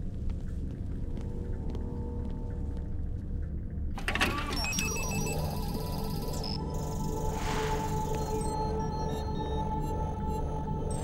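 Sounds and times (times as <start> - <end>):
background score music: 0.0 - 11.0.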